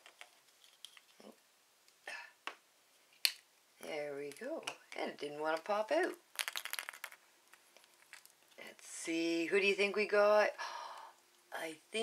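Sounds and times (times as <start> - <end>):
plastic capsule clicking and cracking: 4.3 - 8.6.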